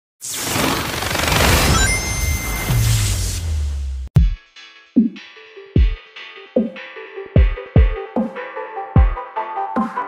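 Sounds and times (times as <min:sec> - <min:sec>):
brief rising tone: 0:01.3 - 0:03.9.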